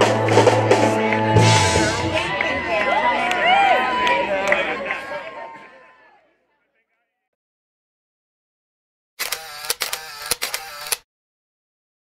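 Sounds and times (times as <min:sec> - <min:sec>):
whirring motor drive: 0:09.2 - 0:11.0
camera shutter clicks: 0:09.2 - 0:11.1.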